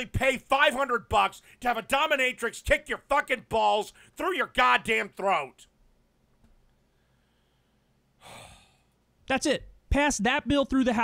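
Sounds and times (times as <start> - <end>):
short breathy sigh: 6.9 - 9.0.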